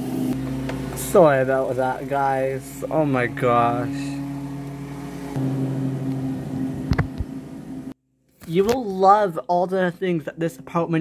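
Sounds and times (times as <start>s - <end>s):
low machine hum: 0.0s - 8.0s.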